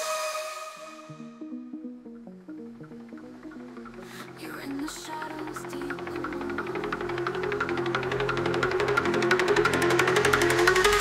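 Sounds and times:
dark techno music: 0:00.0 - 0:11.0.

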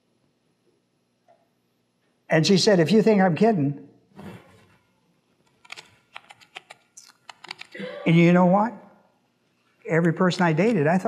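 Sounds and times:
person speaking: 0:07.0 - 0:09.0, 0:09.8 - 0:11.0.

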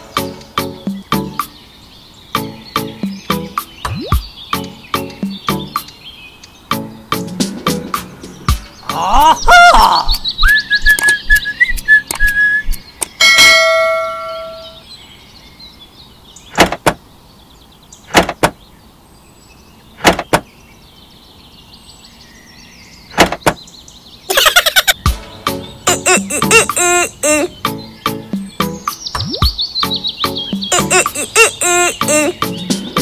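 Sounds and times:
faint bird chirps: 0:08.2 - 0:33.0
held whistle: 0:10.4 - 0:12.8
bell-like ding: 0:13.2 - 0:14.8
sharp knocks: 0:16.5 - 0:17.0, 0:18.1 - 0:18.6, 0:20.0 - 0:20.5, 0:23.1 - 0:23.6.

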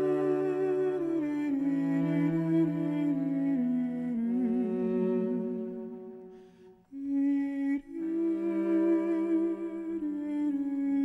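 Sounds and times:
bowed cello: 0:00.0 - 0:11.0.

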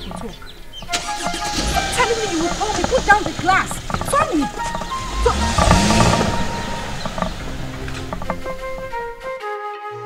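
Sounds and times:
car engine rumble: 0:00.0 - 0:09.4
tyre noise: 0:00.0 - 0:09.4
background music: 0:00.0 - 0:10.0.

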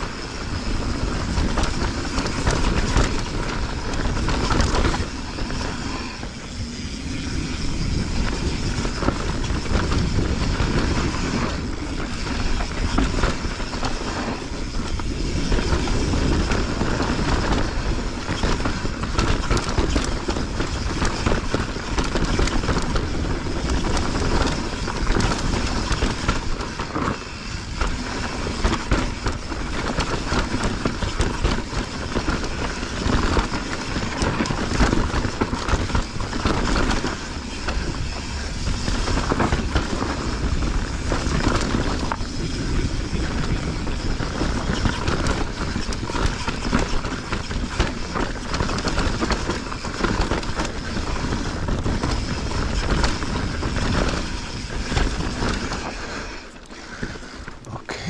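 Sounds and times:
bike rattling: 0:00.0 - 0:58.0
bike tyres rolling over dirt: 0:00.0 - 0:58.0
wind buffeting microphone: 0:00.0 - 0:58.0.

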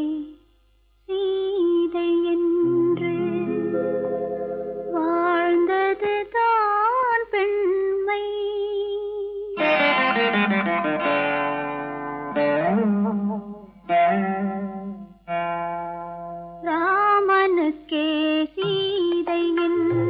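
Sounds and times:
woman singing: 0:00.0 - 0:00.4, 0:01.1 - 0:03.9, 0:04.9 - 0:09.6, 0:16.6 - 0:20.0.

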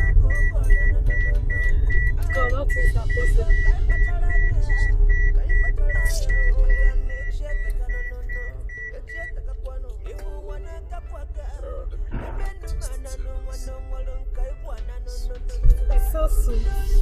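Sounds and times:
car warning chime beeping: 0:00.0 - 0:10.7
low engine rumble: 0:00.0 - 0:17.0.

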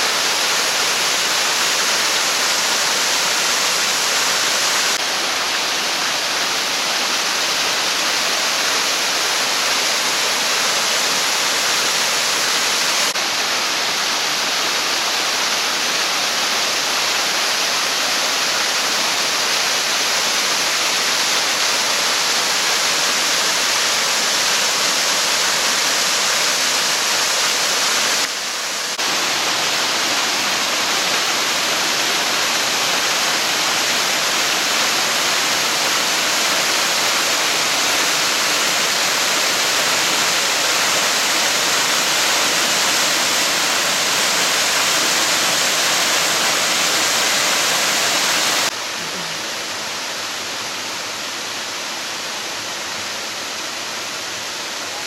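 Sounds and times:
waterfall splashing over rocks: 0:00.0 - 0:55.0.

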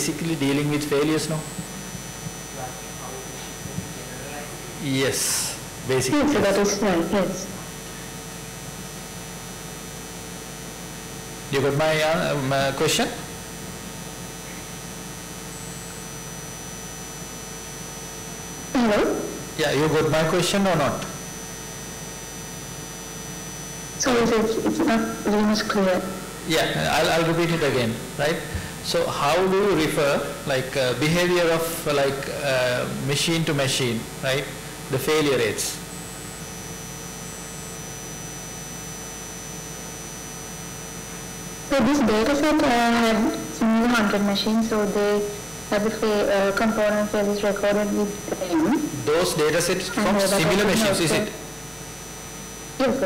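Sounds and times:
high-pitched whine: 0:00.0 - 0:53.0
sound system hum and hiss: 0:00.0 - 0:53.0
thin high steady tone: 0:15.4 - 0:16.8.

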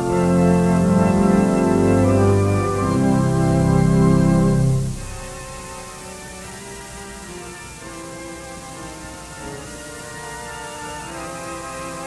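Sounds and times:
pipe organ chords: 0:00.0 - 0:12.0
tape hiss: 0:00.0 - 0:12.0.

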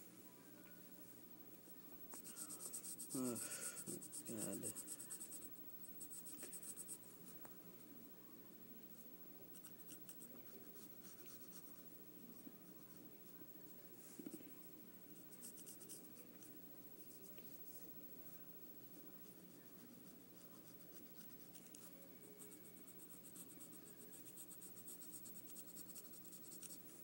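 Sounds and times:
pencil scratching on paper: 0:02.2 - 0:07.0, 0:15.2 - 0:16.2, 0:18.9 - 0:27.0.

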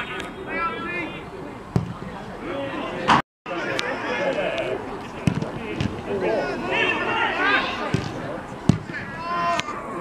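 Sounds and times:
football kick thuds: 0:01.7 - 0:02.1, 0:05.2 - 0:06.0, 0:07.9 - 0:09.1
footballers shouting: 0:02.0 - 0:10.0.

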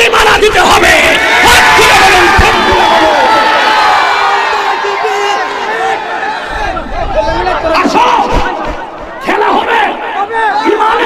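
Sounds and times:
crowd of men shouting and cheering: 0:00.0 - 0:11.0.

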